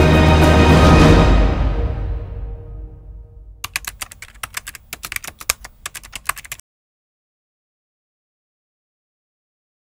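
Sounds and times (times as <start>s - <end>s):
music: 0.0s - 3.6s
typing on computer keyboard: 3.6s - 6.6s.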